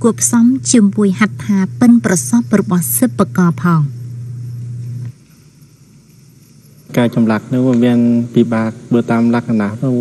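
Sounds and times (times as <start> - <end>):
faint background noise: 0.0 - 10.0
steady low hum: 0.0 - 10.0.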